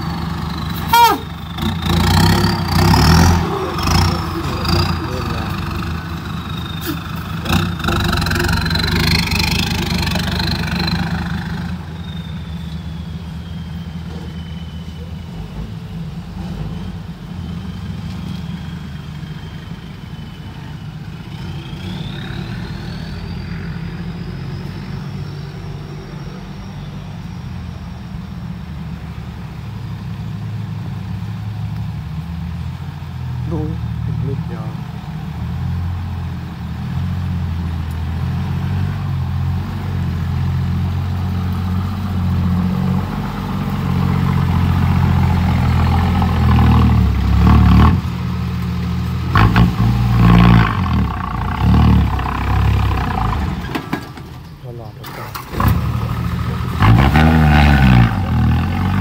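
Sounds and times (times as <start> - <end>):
diesel truck engine revving: 0.0 - 59.0.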